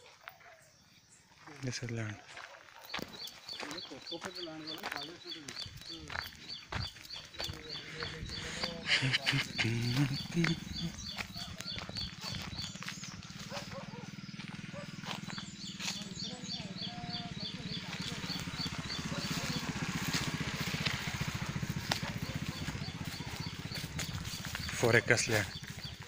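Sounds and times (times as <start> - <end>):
animal chirping: 2.9 - 26.0.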